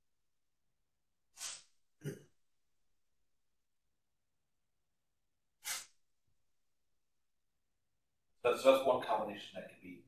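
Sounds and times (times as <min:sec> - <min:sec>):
short sharp breath: 0:01.3 - 0:01.8, 0:05.6 - 0:06.0
man clearing his throat: 0:02.0 - 0:02.3.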